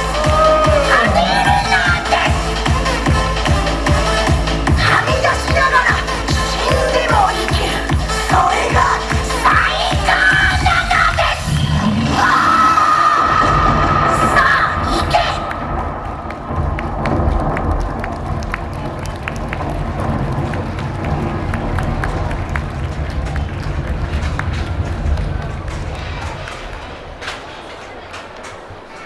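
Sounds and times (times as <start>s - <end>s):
loud dance music: 0.0s - 16.8s
steady low rumble: 0.0s - 28.9s
crowd cheering and shouting: 0.0s - 29.0s.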